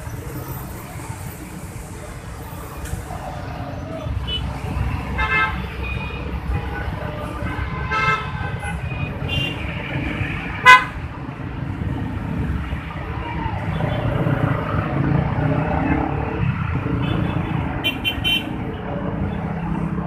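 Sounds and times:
traffic engine rumble: 0:00.0 - 0:20.0
car horn toots: 0:10.6 - 0:11.0.

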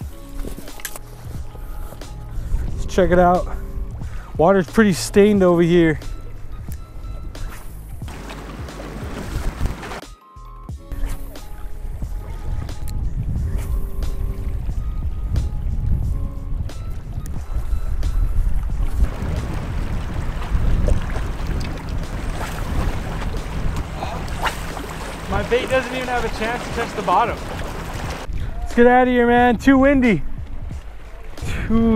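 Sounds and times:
wind on microphone: 0:00.0 - 0:04.4, 0:06.2 - 0:10.0, 0:10.9 - 0:31.9
choppy water: 0:00.0 - 0:10.1, 0:10.8 - 0:31.9
background music: 0:00.0 - 0:29.6.

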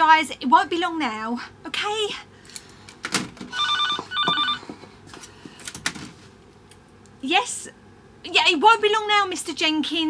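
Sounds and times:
telephone double ring: 0:03.5 - 0:04.7.

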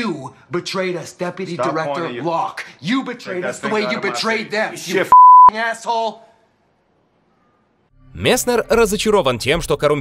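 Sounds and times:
high censor bleep: 0:05.1 - 0:05.5.

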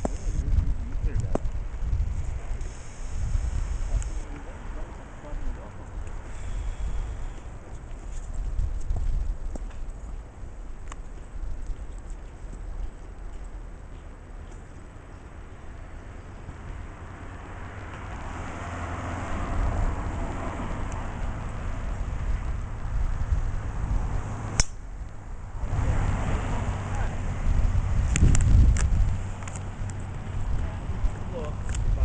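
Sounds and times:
wind rumbling on microphone: 0:00.0 - 0:32.0
golf club striking ball: 0:24.5 - 0:24.9.

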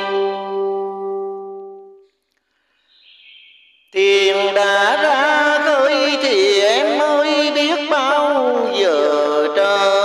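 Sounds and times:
person singing long wavering note: 0:00.0 - 0:02.0.

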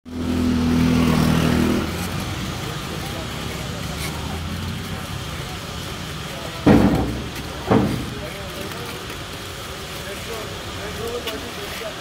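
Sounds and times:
street noise: 0:00.0 - 0:12.0
vehicle engine running: 0:00.1 - 0:12.0.

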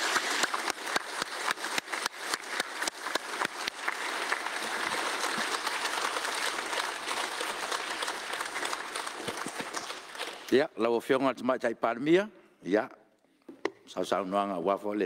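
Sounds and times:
crowd applauding: 0:00.0 - 0:10.5.

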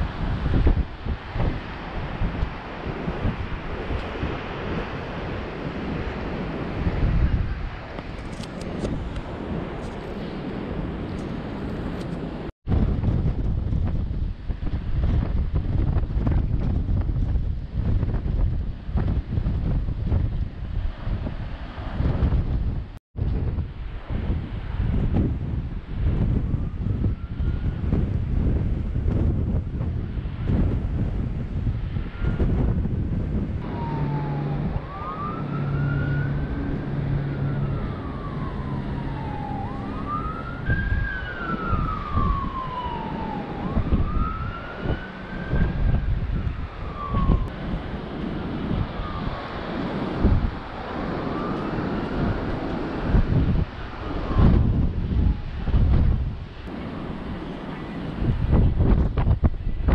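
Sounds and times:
emergency siren wailing: 0:00.0 - 0:08.0, 0:26.0 - 0:28.9, 0:31.9 - 0:59.2
wind buffeting microphone: 0:00.0 - 0:59.9.

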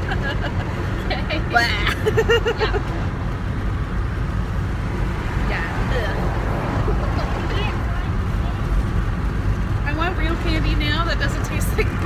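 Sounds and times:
car road and engine rumble: 0:00.0 - 0:12.0
woman speaking: 0:01.1 - 0:02.8, 0:09.9 - 0:12.0.

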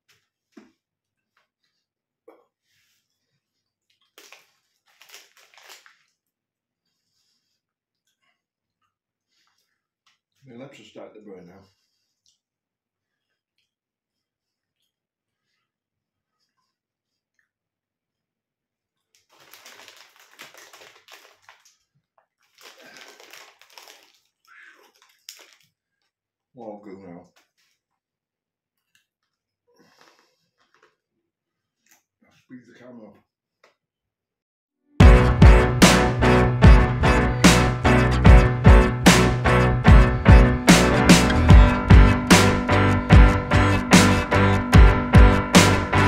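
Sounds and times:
plastic snack packet crinkling: 0:03.8 - 0:06.3, 0:19.0 - 0:26.2
crunchy chewing: 0:19.2 - 0:26.1.

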